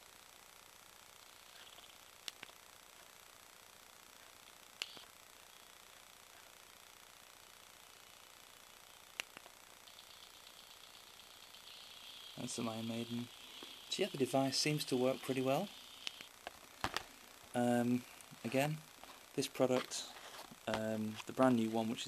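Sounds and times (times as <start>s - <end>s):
faint hiss: 7.6s - 22.0s.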